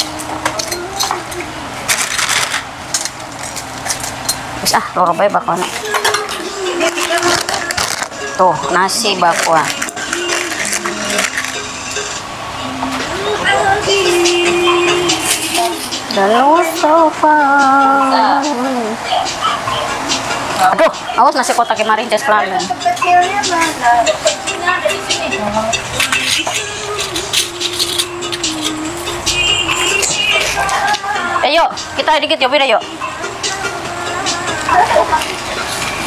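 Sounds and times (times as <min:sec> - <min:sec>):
utensils clinking on metal trays: 0:00.0 - 0:12.2, 0:12.8 - 0:17.0, 0:20.8 - 0:31.2
plastic bag rustling: 0:01.8 - 0:04.2, 0:05.6 - 0:11.8
faint voices: 0:03.4 - 0:36.0.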